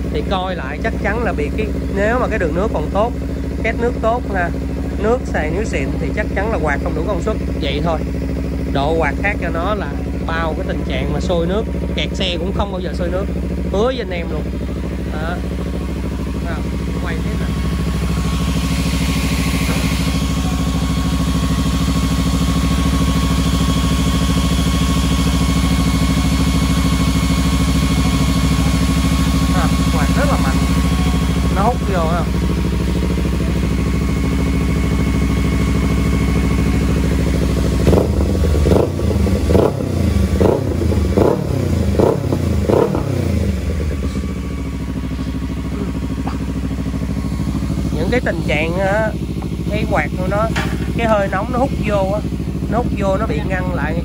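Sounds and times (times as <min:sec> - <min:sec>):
motorcycle engine idling and revving: 0:00.0 - 0:54.0.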